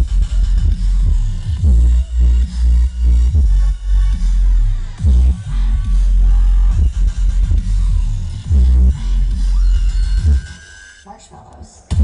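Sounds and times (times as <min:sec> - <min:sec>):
dubstep over sound system: 0:00.0 - 0:12.0.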